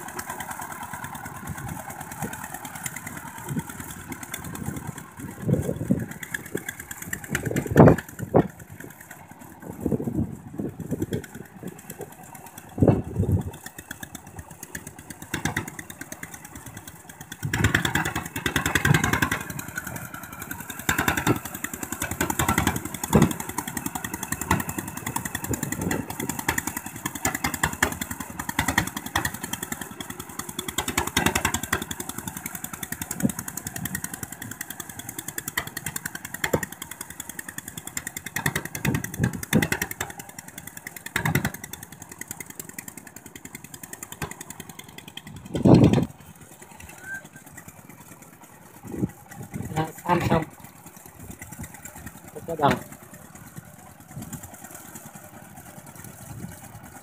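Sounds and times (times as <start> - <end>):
diesel engine chugging: 0.0 - 57.0.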